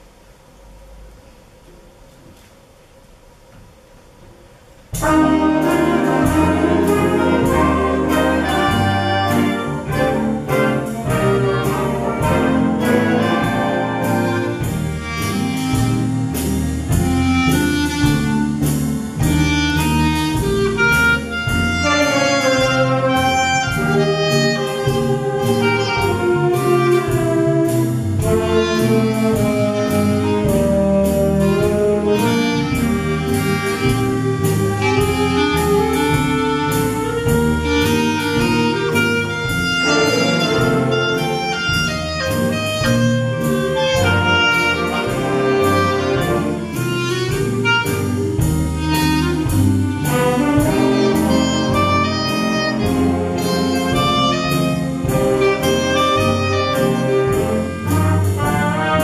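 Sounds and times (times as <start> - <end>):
swing orchestra playing: 4.9 - 59.0
solo clarinet melody: 5.0 - 59.0.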